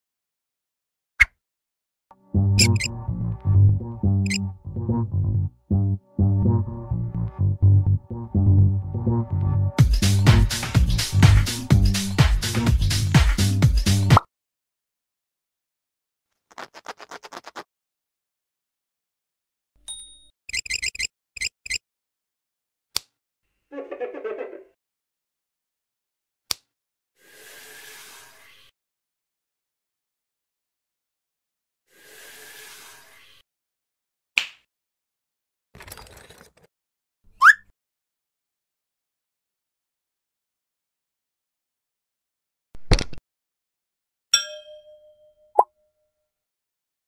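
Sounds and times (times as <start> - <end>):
bell-like cartoon ding: 19.9 - 20.3, 44.4 - 45.6.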